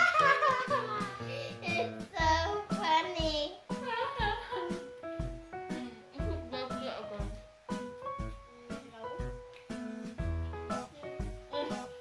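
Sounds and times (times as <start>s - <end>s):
instrumental backing: 0.0s - 12.0s
deep bass beat: 0.6s - 8.5s, 9.2s - 11.6s.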